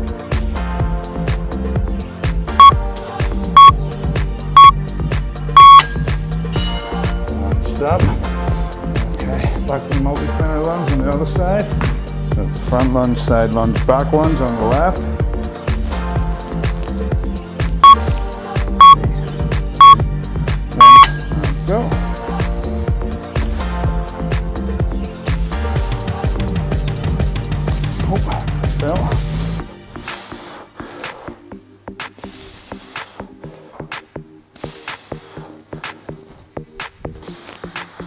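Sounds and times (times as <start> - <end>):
background music with a beat: 0.0 - 38.0
electronic timer beeps: 3.6 - 3.8, 4.6 - 4.8, 5.6 - 6.2, 17.8 - 18.0, 18.8 - 19.0, 19.8 - 20.0, 20.8 - 21.5.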